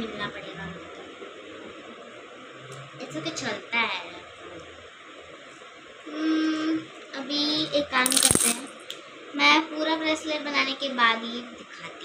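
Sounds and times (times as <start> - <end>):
metal charms clinking: 8.1 - 8.8.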